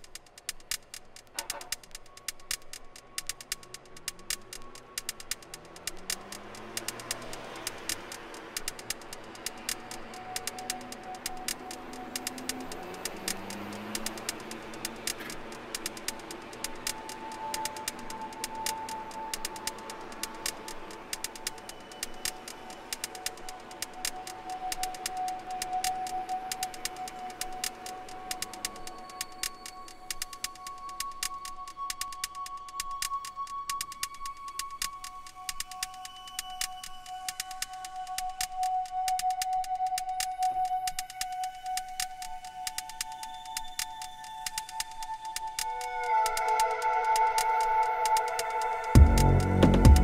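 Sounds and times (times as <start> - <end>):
fast ticking techno percussion: 0.0 - 50.0
low rising synth glides: 3.6 - 30.2, 45.1 - 50.0.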